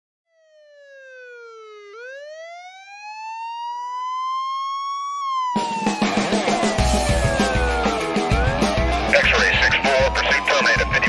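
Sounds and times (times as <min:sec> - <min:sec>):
police siren wailing: 0:00.3 - 0:11.0.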